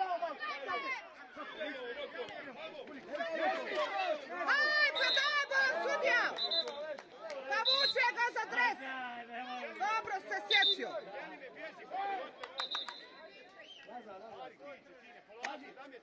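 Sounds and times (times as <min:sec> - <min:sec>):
voices calling out and chattering: 0:00.0 - 0:16.0.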